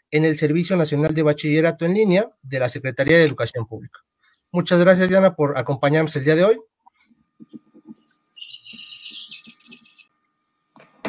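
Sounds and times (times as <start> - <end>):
bird chirping and trilling: 4.2 - 4.6, 7.9 - 10.2.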